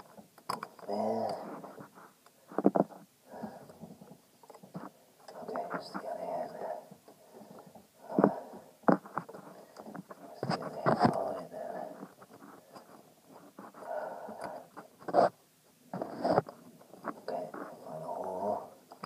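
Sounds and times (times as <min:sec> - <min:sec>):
handling noise near microphone: 0:00.0 - 0:17.9
heavy breathing: 0:03.2 - 0:03.9, 0:06.5 - 0:13.0, 0:13.7 - 0:14.9
rubbing: 0:14.7 - 0:15.4, 0:16.0 - 0:17.8.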